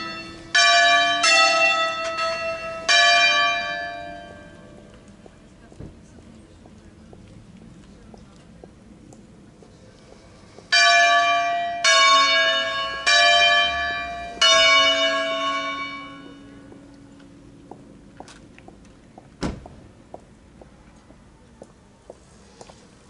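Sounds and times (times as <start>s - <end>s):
church bell ringing: 0.0s - 5.1s, 10.7s - 17.5s.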